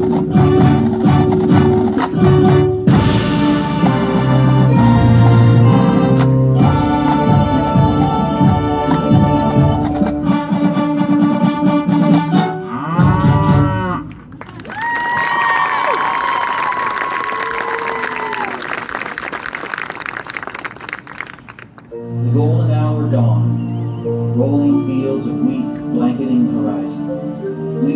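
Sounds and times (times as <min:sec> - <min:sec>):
marching band playing: 0:00.0 - 0:13.9
audience applause and cheering: 0:14.1 - 0:21.9.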